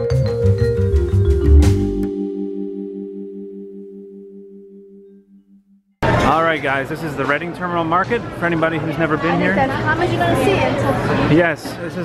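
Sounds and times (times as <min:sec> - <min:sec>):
sustained chord with pulsing tremolo: 0:01.9 - 0:05.9.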